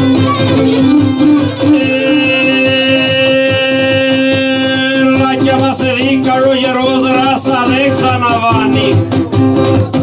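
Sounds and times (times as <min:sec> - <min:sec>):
plucked string accompaniment: 0:00.0 - 0:10.0
bowed lyra holding long note: 0:01.2 - 0:04.0.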